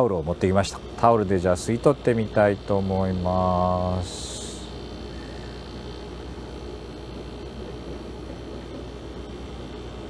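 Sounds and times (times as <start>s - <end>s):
man speaking: 0.0s - 4.7s
ventilation hiss: 0.0s - 10.0s.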